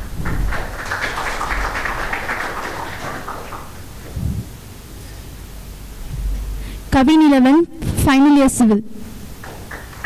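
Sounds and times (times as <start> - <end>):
small group clapping: 0.0 - 3.9, 9.4 - 10.0.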